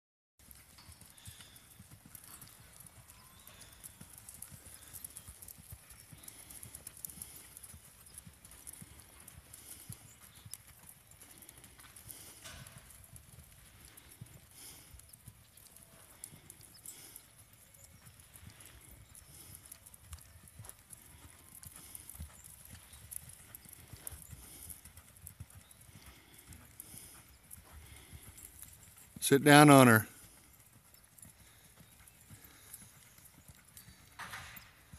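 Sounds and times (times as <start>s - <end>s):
hoofbeats on sand: 0.4s - 34.9s.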